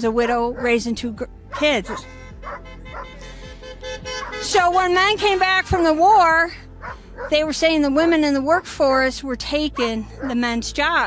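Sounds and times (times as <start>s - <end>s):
background music with held notes: 0.0s - 11.0s
dog barking: 1.5s - 3.2s, 4.1s - 4.5s, 6.8s - 7.4s, 9.8s - 10.5s.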